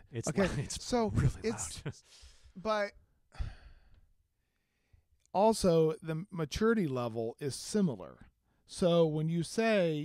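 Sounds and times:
man sighing: 3.3s - 4.0s.

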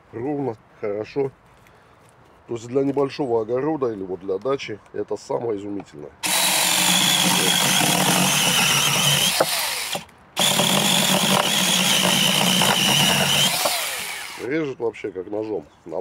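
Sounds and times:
mini chainsaw cutting branch: 6.2s - 14.5s.

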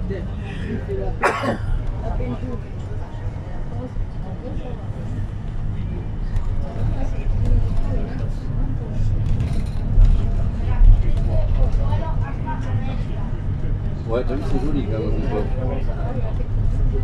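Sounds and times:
engine and road rumble: 0.0s - 17.0s.

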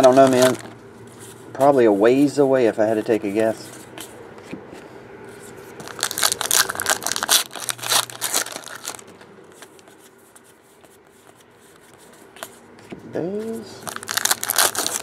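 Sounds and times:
wrapper rustling: 0.0s - 0.8s, 5.8s - 10.1s, 13.8s - 15.0s
wrapper tearing and crackling: 0.0s - 0.8s, 5.8s - 9.1s, 13.9s - 15.0s.

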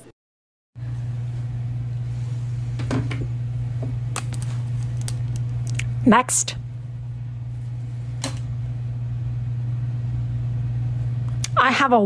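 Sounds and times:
low hum: 0.8s - 12.0s.

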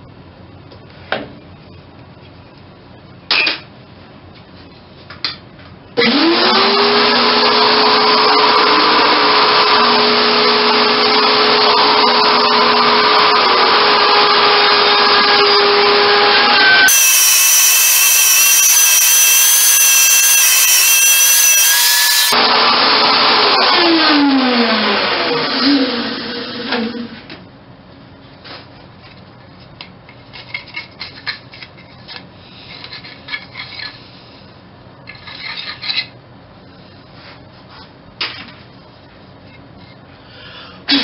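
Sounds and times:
router cutting wood: 6.0s - 26.9s
wood router whining: 6.0s - 27.0s.

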